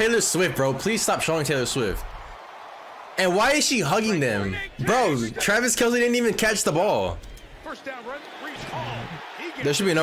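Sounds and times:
man commentating: 0.0s - 2.1s, 3.2s - 10.0s.

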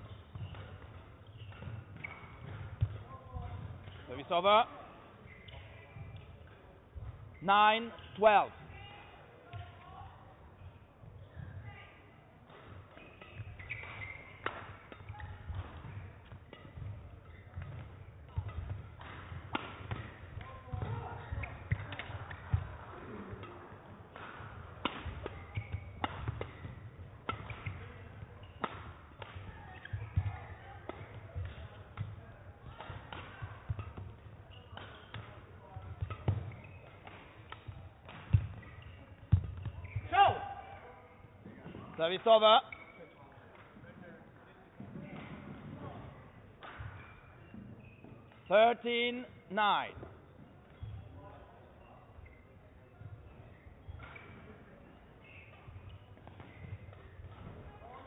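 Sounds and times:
racket striking shuttlecock: 13.2s - 20.8s, 21.4s - 22.5s, 23.4s - 27.9s, 28.5s - 30.2s.

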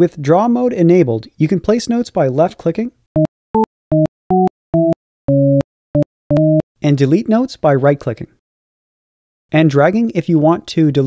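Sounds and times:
synthesizer preview notes: 3.2s - 6.6s.

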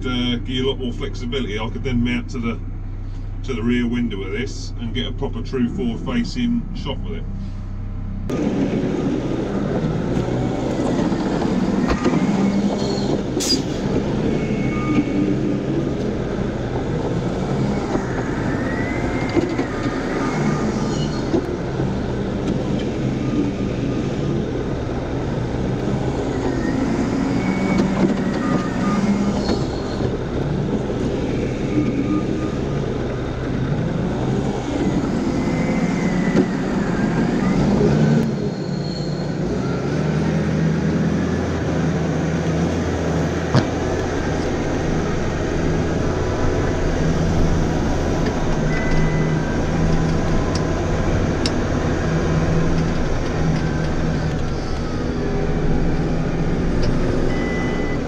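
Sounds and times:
diesel engine revving: 0.0s - 58.0s.

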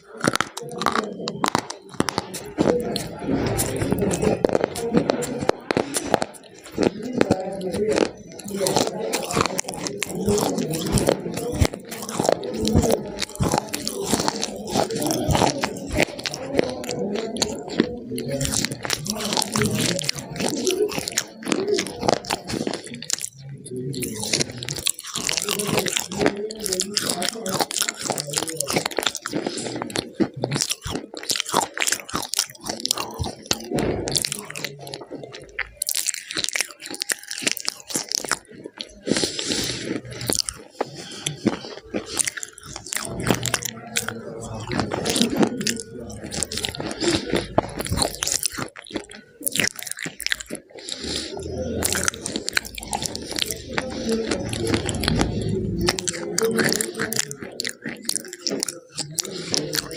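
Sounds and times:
crunchy biting and chewing: 0.0s - 59.9s
mouth clicks: 0.0s - 59.9s.

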